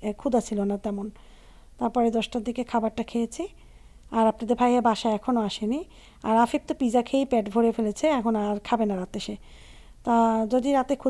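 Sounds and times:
woman talking: 0:00.0 - 0:01.2, 0:01.8 - 0:09.4, 0:10.0 - 0:11.0.

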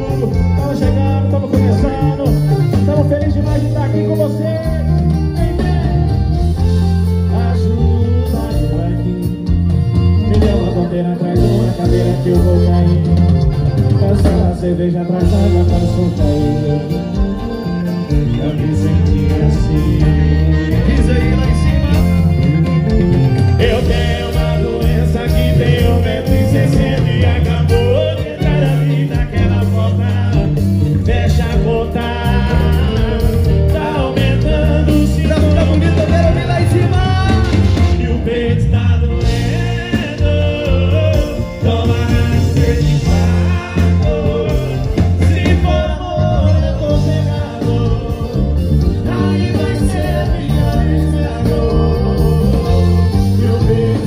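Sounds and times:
accordion: 0:00.0 - 0:54.0
guitar: 0:00.0 - 0:54.0
heavy bass: 0:00.0 - 0:54.0
live band through loud speakers: 0:00.0 - 0:54.0
person singing: 0:23.6 - 0:54.0.

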